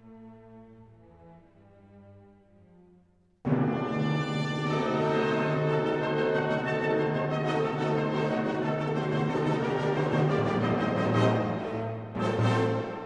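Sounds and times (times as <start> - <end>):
orchestral music: 3.5 - 13.0.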